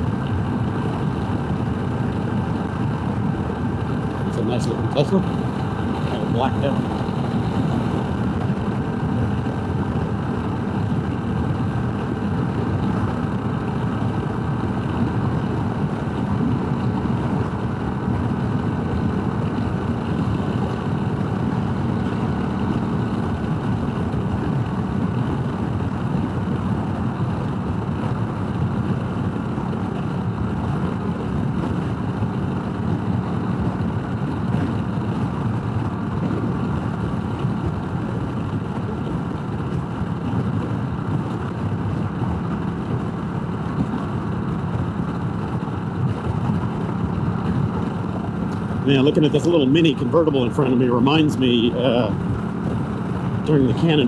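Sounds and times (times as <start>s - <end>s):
motorcycle engine running: 0.0s - 54.0s
road noise: 0.0s - 54.0s
wind rush: 0.0s - 54.0s.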